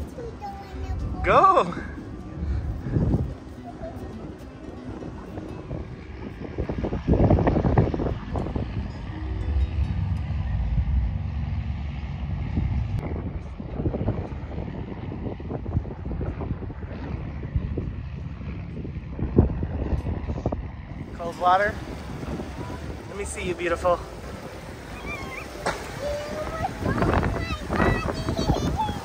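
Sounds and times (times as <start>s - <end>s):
vehicle engine rumbling: 0.0s - 15.3s, 16.9s - 29.0s
wind buffeting microphone: 0.0s - 29.0s.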